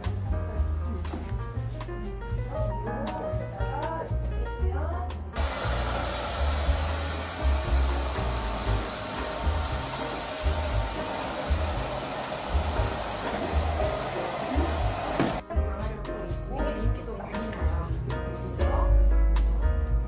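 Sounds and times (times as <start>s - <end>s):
background music: 0.0s - 20.0s
hair dryer running: 5.4s - 15.4s.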